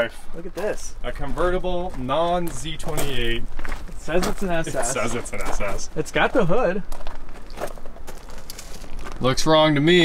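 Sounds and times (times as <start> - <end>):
footsteps on gravel: 0.0 - 9.6.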